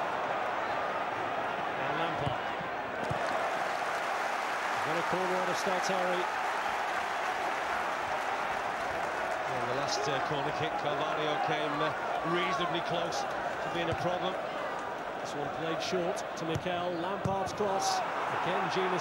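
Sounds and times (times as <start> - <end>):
stadium crowd noise: 0.0 - 19.0.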